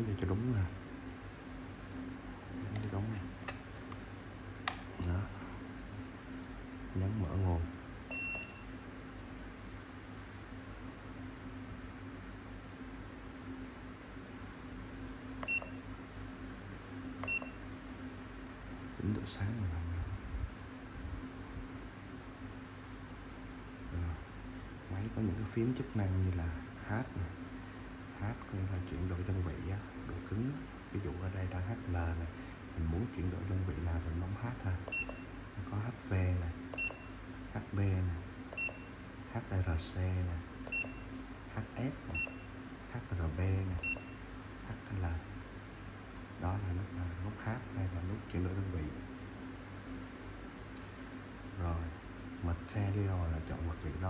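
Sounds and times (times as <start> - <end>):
high-pitched key beeps: 8.1 - 8.7, 15.4 - 15.8, 17.2 - 17.6, 34.9 - 35.2, 36.7 - 37.1, 38.6 - 38.9, 40.6 - 41.1, 42.1 - 42.5, 43.8 - 44.2.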